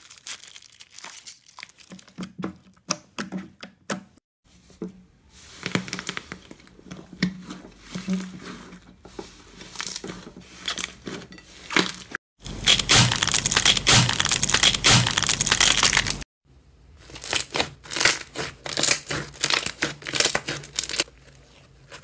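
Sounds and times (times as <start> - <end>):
slime crackling and squelching: 0.0 - 2.9, 17.0 - 22.0.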